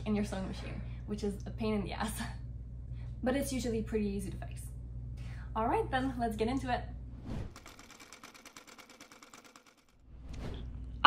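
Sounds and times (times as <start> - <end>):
rapid even ticking: 7.5 - 10.0.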